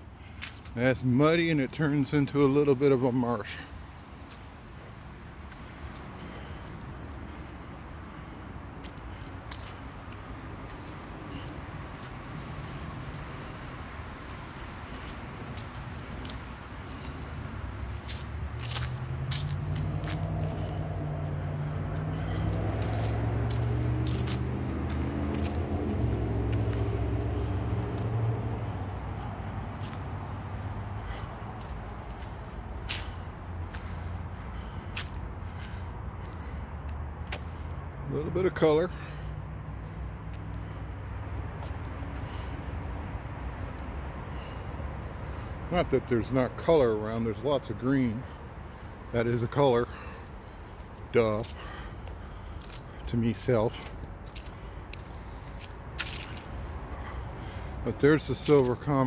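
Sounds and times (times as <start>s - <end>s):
insects droning: 0.0s - 59.0s.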